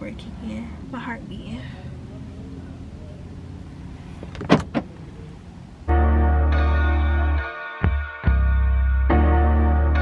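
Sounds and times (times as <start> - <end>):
car cabin rumble: 4.0 - 5.4.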